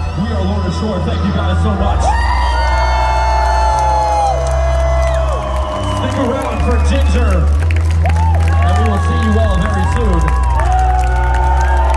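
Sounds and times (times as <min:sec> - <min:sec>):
fans cheering with whoops: 0:00.0 - 0:11.9.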